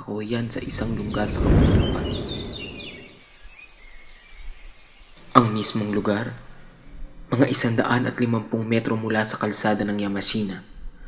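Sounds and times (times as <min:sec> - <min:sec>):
low background hiss: 0:00.0 - 0:10.4
faint bird chirps: 0:00.4 - 0:06.9.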